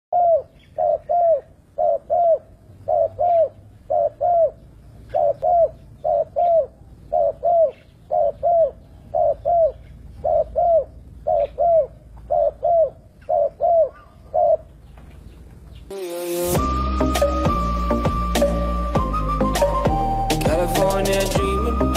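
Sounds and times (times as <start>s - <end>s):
dove cooing: 0.1s - 15.6s.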